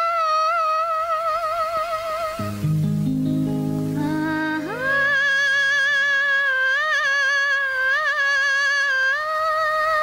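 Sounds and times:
woman humming a melody: 0:00.0 - 0:10.0.

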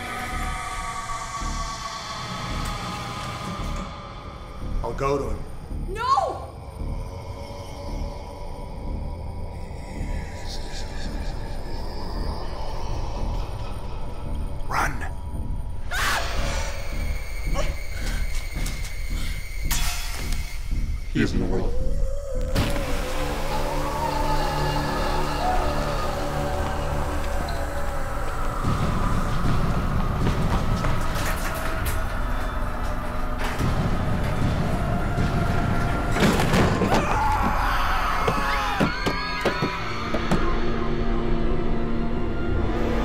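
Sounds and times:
tense horror film score: 0:00.0 - 0:43.0.

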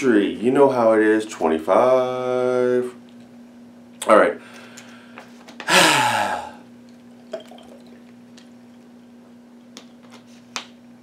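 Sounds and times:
steady low hum: 0:00.0 - 0:11.0
man exhaling breathily: 0:04.6 - 0:06.6.

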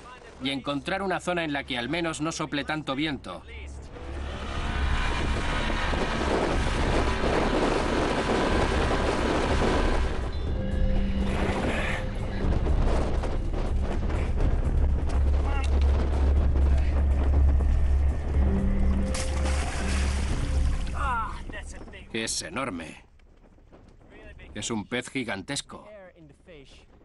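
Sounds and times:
background music: 0:00.0 - 0:22.5
wind: 0:00.0 - 0:27.0
outboard motor running: 0:04.0 - 0:10.4.

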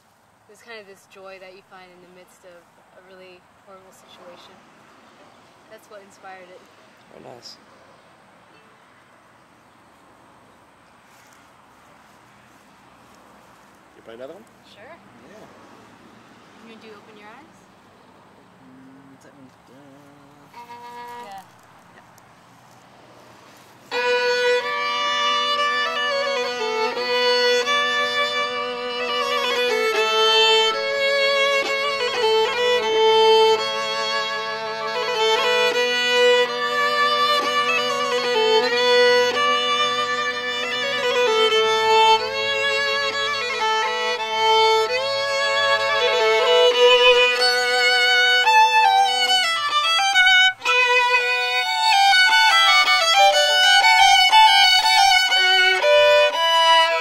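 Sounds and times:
two fiddles playing a tune: 0:00.0 - 0:04.6, 0:05.7 - 0:07.6, 0:16.6 - 0:17.6, 0:19.2 - 0:57.0.

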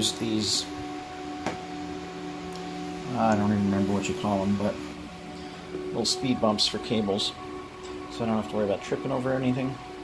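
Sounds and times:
cooling fans humming: 0:00.0 - 0:10.0.

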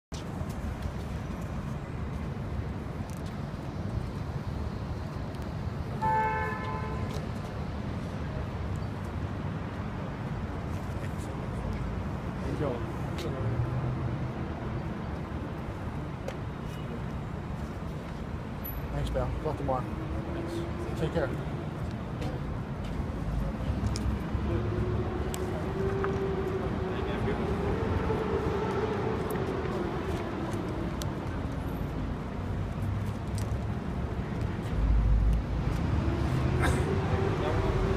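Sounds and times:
low rumble of street traffic: 0:00.1 - 0:37.9
car horn two-tone toot: 0:06.0 - 0:07.1.

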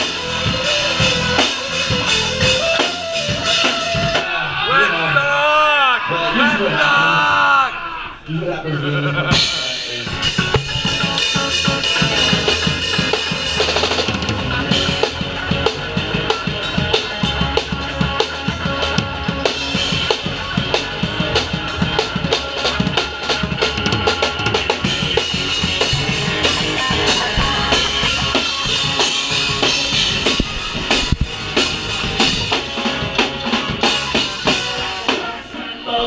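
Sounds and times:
fast drum kit beat: 0:00.0 - 0:04.4, 0:09.3 - 0:35.4
punk ska band playing live: 0:00.0 - 0:04.5, 0:09.3 - 0:36.0.

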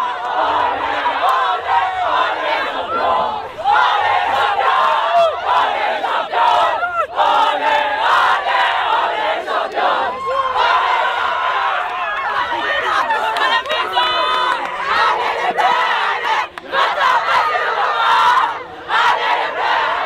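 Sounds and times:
young women shouting and cheering: 0:02.8 - 0:07.2, 0:10.0 - 0:18.7.

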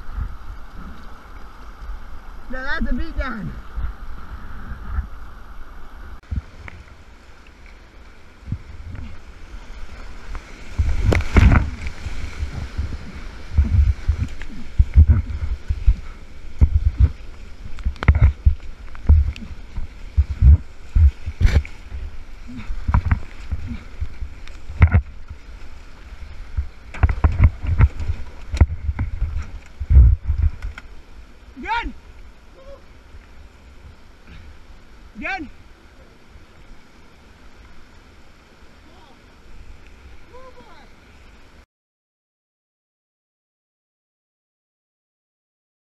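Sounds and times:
paddle strokes splashing: 0:00.0 - 0:41.6
water breaking over kayak: 0:06.2 - 0:35.3
person crying out: 0:32.5 - 0:32.9.

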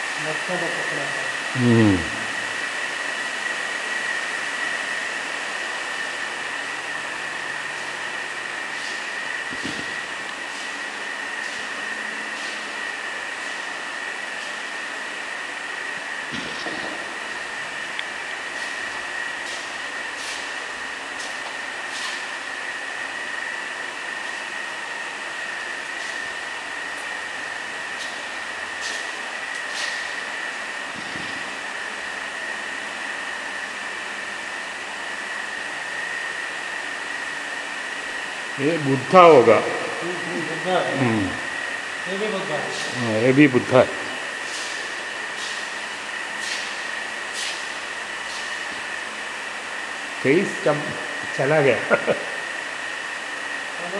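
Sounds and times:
steady hiss: 0:38.6 - 0:52.3.

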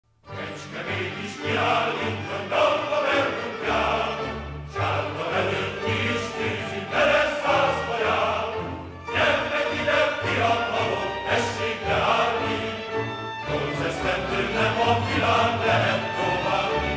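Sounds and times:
choir singing: 0:00.3 - 0:16.9.

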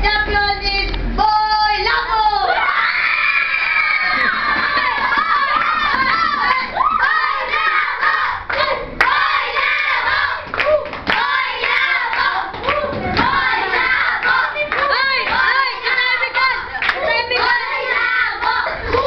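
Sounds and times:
children shouting and cheering: 0:01.8 - 0:19.0.

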